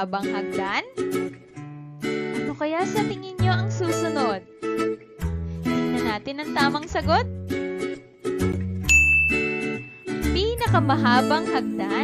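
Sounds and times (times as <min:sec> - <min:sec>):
light background music: 0:00.0 - 0:12.0
bright ding: 0:08.9 - 0:10.3.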